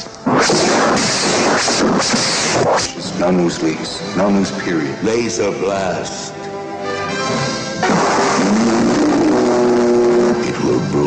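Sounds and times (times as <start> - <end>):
sustained music chords: 4.1 - 11.0
loud rushing sound effect: 7.3 - 10.4.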